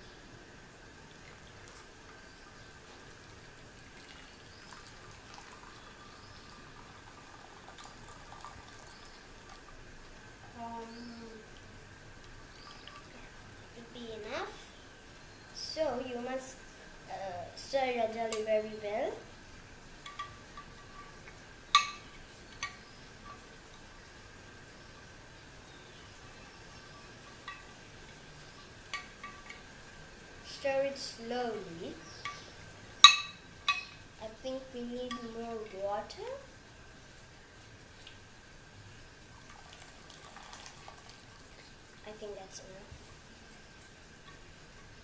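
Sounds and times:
hot water pouring into a bowl: 0:00.9 - 0:10.4, 0:11.5 - 0:13.6, 0:37.1 - 0:42.1
metal spoon clinking glass bowl: 0:21.7 - 0:23.4, 0:33.0 - 0:34.0.

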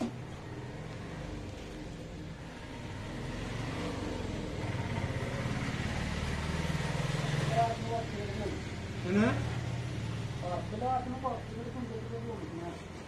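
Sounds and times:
voices: 0:07.3 - 0:13.0.

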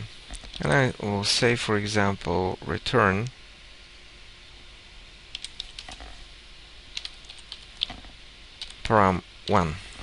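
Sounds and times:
computer keyboard typing: 0:05.3 - 0:06.1, 0:06.9 - 0:08.0, 0:08.6 - 0:08.8.

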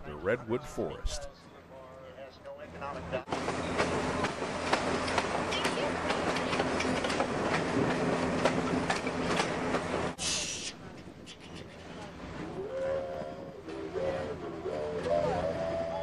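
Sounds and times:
train rumbling on track: 0:03.2 - 0:10.2
wheels clacking over rails: 0:03.3 - 0:10.2
hiss burst: 0:10.2 - 0:10.8.

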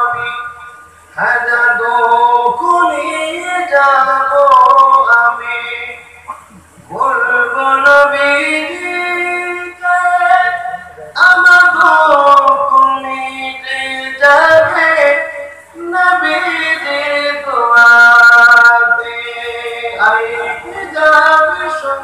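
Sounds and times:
person chanting religious verses: 0:00.0 - 0:22.0.

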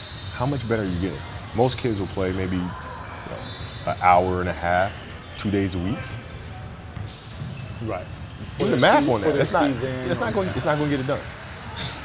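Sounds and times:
man speaking: 0:08.6 - 0:11.1.

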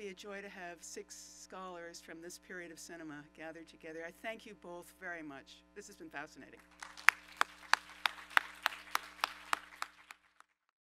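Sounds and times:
audience applauding: 0:06.7 - 0:10.6
sharp nearby hand clapping: 0:06.8 - 0:10.3.

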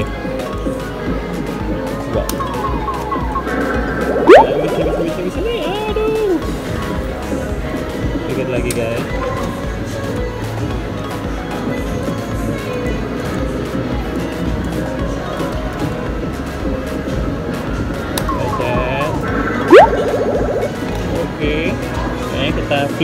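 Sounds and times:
arcade electronic music and jingles: 0:02.2 - 0:06.4, 0:18.2 - 0:21.7
upward-sweeping electronic sound effect: 0:02.4 - 0:05.9, 0:18.3 - 0:21.0
warbling electronic tones: 0:02.4 - 0:05.9, 0:18.3 - 0:21.0.

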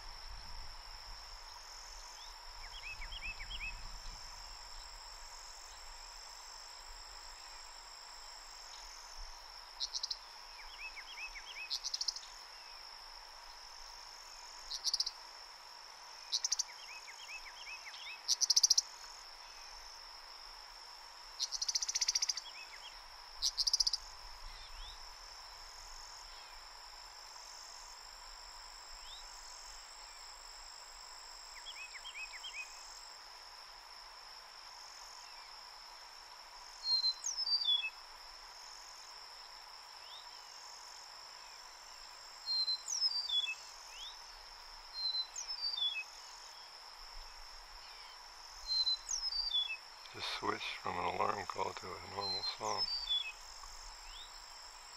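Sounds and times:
insect trill: 0:00.0 - 0:54.9
bird song of whistled notes: 0:02.2 - 0:04.9, 0:09.8 - 0:12.8, 0:31.6 - 0:32.8, 0:36.8 - 0:38.0, 0:42.4 - 0:44.2, 0:44.9 - 0:46.7, 0:47.8 - 0:49.9, 0:52.2 - 0:53.4, 0:54.0 - 0:54.5
bird harsh buzzy alarm calls: 0:50.2 - 0:53.1.

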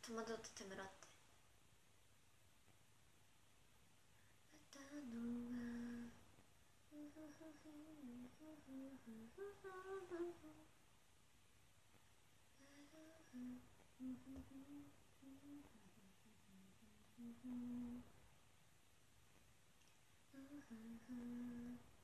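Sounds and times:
woman humming a tune: 0:04.5 - 0:06.2, 0:06.9 - 0:10.7, 0:12.6 - 0:18.2, 0:20.3 - 0:22.0.

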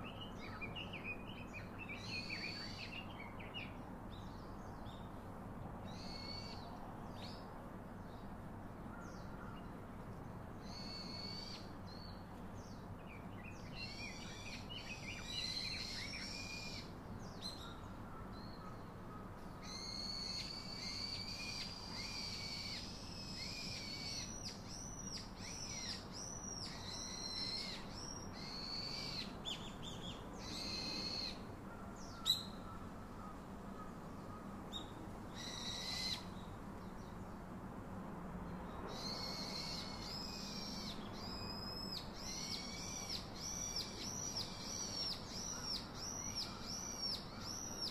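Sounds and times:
birds whistling calls: 0:05.9 - 0:06.6, 0:10.6 - 0:12.2, 0:13.1 - 0:18.8, 0:19.6 - 0:36.5, 0:38.9 - 0:47.9.

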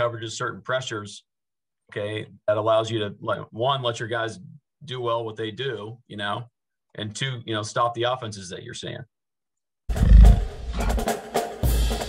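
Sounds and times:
deep animal roar: 0:09.9 - 0:11.2
drum hits: 0:09.9 - 0:12.0.

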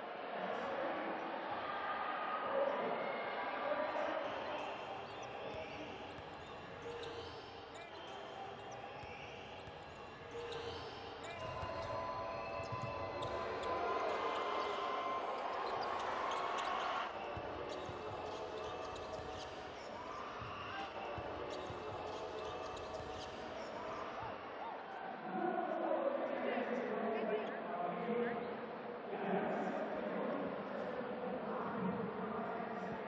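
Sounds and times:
crowd voices: 0:00.0 - 0:33.0.

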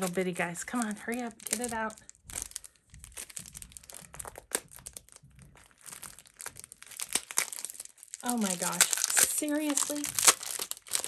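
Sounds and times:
packaging crinkling: 0:00.0 - 0:11.0.

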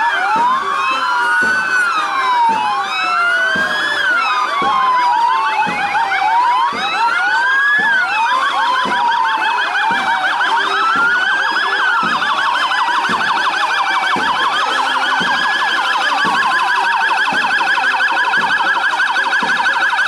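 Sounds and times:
fast yelping siren: 0:00.0 - 0:20.0
fire engine sirens wailing: 0:00.0 - 0:20.0.

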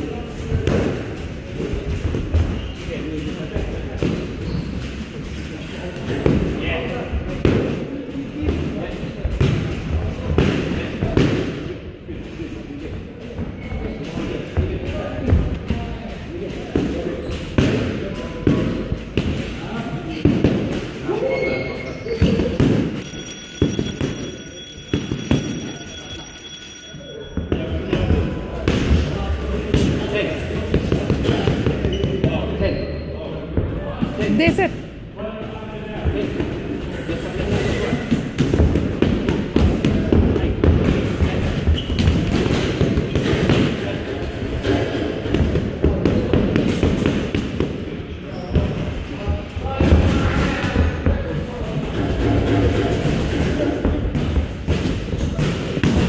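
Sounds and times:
person speaking: 0:34.3 - 0:34.8.

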